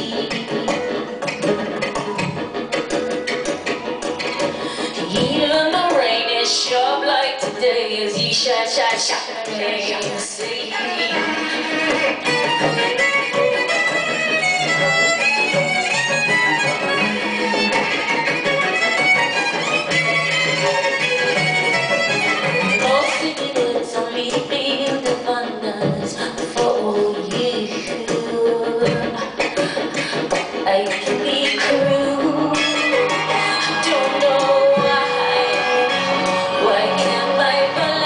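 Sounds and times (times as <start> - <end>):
bowed strings: 11.1 - 23.2.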